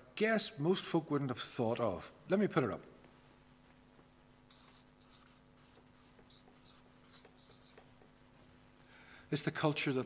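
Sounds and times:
faint handwriting strokes: 4.4 - 8.5.

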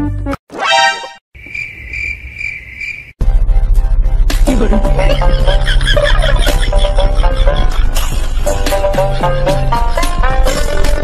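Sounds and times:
crickets chirping: 1.4 - 3.1
upbeat background music: 3.6 - 11.0.

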